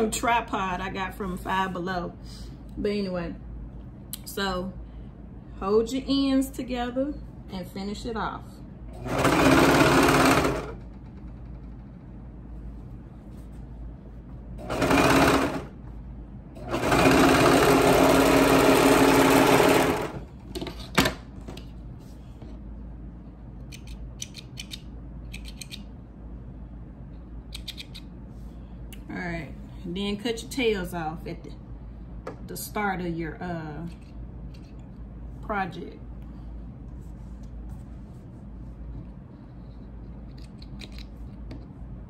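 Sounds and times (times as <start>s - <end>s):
overlock sewing machine running: 9.0s - 10.8s, 14.6s - 15.8s, 16.6s - 20.3s.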